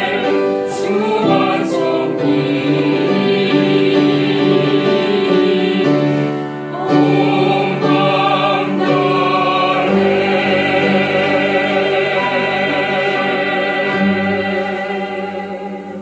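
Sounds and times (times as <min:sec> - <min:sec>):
choir singing a hymn: 0:00.0 - 0:16.0
piano accompaniment: 0:00.0 - 0:16.0.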